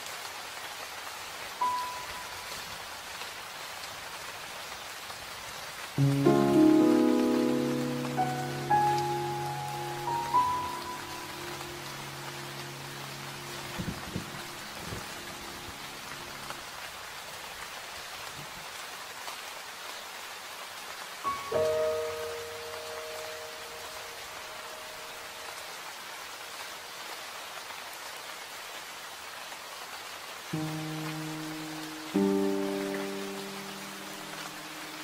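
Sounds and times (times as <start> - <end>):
steady rain falling: 0.0 - 35.0
soft sustained music chords: 6.0 - 16.6, 30.6 - 35.0.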